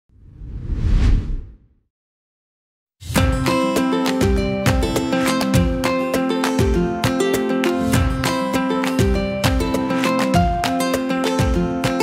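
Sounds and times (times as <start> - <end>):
whoosh with deep rumble: 0.2 - 1.7.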